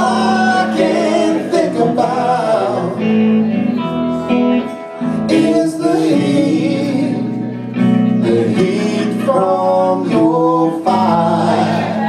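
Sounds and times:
electric guitars: 0.0 - 12.0.

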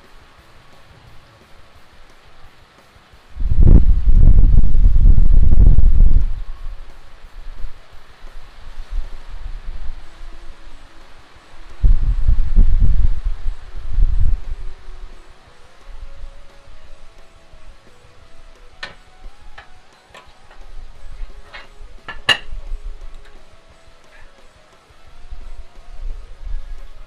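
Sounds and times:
background music: 0.0 - 27.0.

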